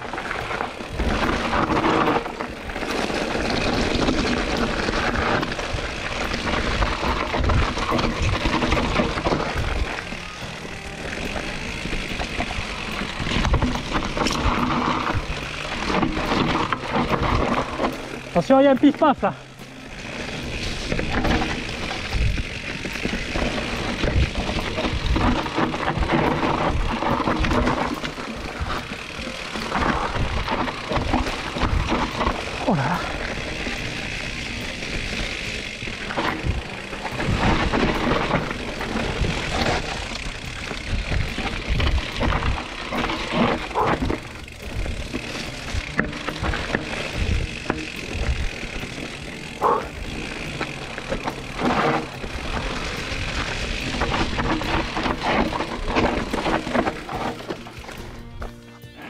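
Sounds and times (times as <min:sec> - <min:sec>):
bike thudding and rattling: 0:00.0 - 0:59.0
tyres rolling over dirt and leaves: 0:00.0 - 0:59.0.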